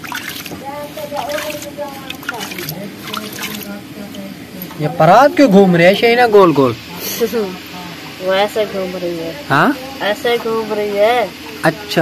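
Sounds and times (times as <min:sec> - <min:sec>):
hand mixing dough in steel bowl: 0:00.0 - 0:04.1
people talking: 0:00.6 - 0:12.0.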